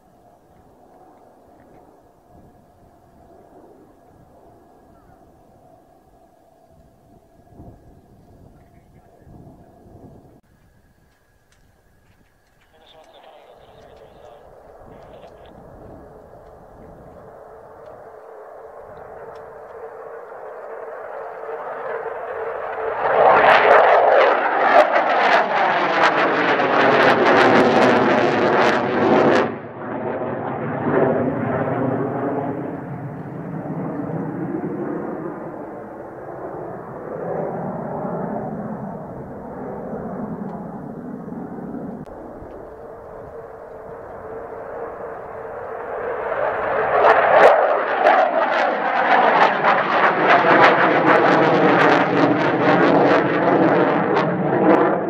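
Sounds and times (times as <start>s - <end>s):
jet engines roaring: 0.0s - 55.0s.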